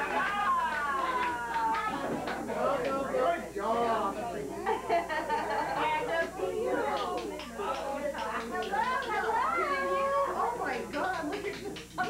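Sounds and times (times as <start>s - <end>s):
adults and children talking: 0.0s - 12.0s.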